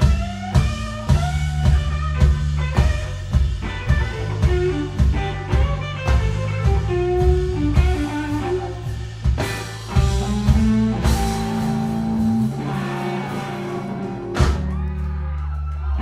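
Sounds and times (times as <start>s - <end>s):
bass guitar: 0.0s - 16.0s
drum kit: 0.0s - 16.0s
electric guitar: 0.0s - 16.0s.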